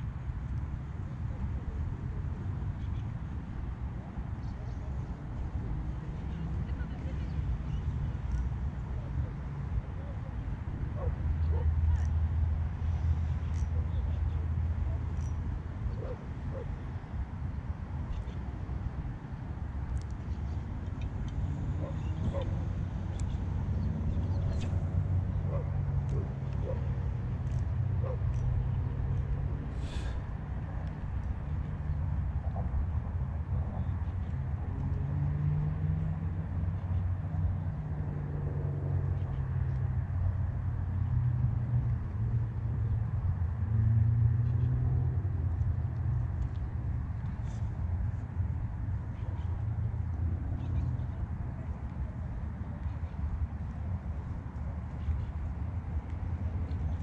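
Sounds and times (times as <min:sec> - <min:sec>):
distant city traffic rumble: 0:00.0 - 0:57.0
vehicles passing: 0:00.0 - 0:57.0.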